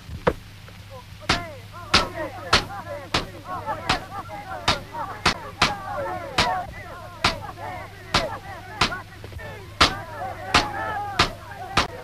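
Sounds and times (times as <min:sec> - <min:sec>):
steady low hum: 0:00.0 - 0:12.0
wooden staves cracking together: 0:00.0 - 0:12.0
people shouting: 0:00.9 - 0:12.0.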